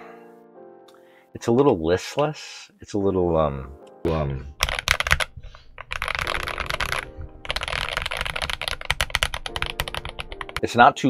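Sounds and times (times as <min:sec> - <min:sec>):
typing on mechanical keyboard: 0:04.5 - 0:10.8.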